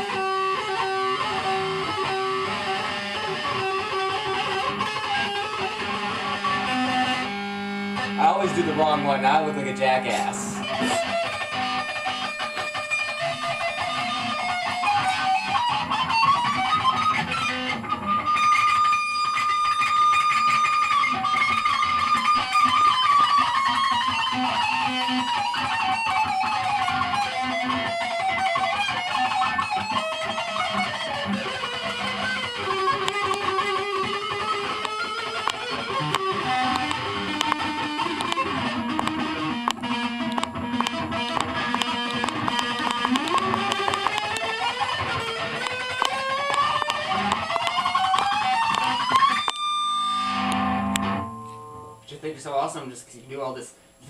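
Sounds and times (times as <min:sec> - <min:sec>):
electric guitar lead line: 0:00.0 - 0:52.8.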